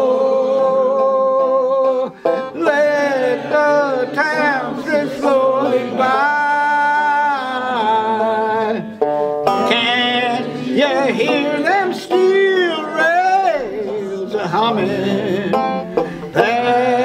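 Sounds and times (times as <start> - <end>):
banjo strumming: 0.0 - 17.0
people singing folk song: 0.0 - 17.0.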